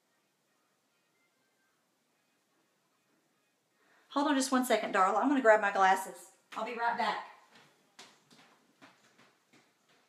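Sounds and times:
faint footsteps walking: 6.3 - 10.0.

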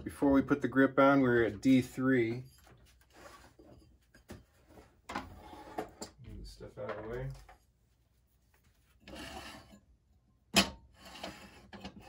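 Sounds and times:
objects scraping and rubbing: 1.3 - 10.0, 10.8 - 12.0.

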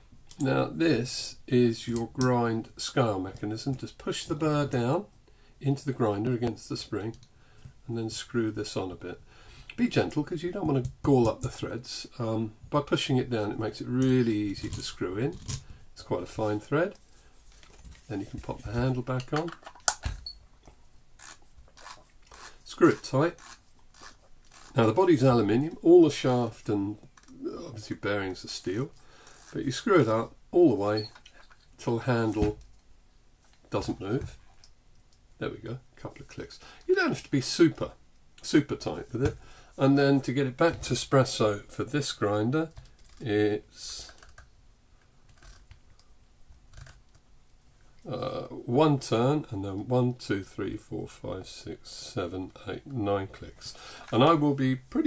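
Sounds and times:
metal parts scraping: 23.4 - 24.8.

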